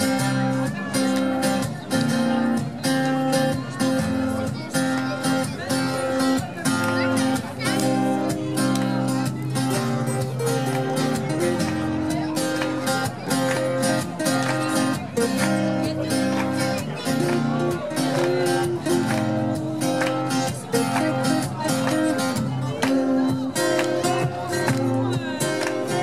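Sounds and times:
acoustic guitars strumming: 0.0s - 26.0s
man singing: 22.5s - 26.0s.

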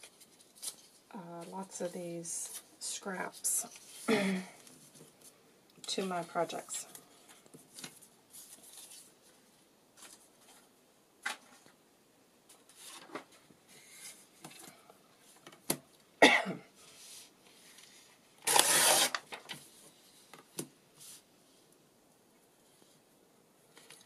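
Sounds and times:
paper rustling: 0.0s - 1.1s, 7.0s - 11.8s, 12.5s - 14.7s
paper tearing: 18.4s - 19.2s.

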